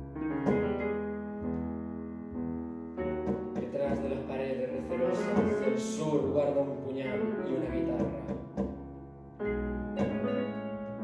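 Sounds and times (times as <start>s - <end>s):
tango ensemble playing: 0.0s - 8.8s, 9.4s - 11.0s.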